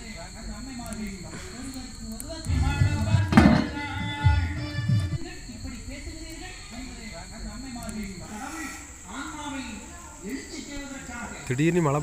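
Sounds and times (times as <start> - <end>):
crickets chirring: 0.0 - 12.0
low indistinct voices talking: 0.0 - 12.0.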